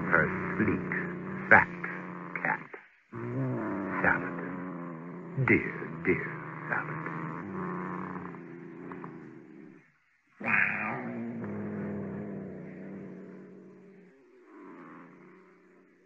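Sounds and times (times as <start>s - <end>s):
cat purring: 0.0s - 16.0s.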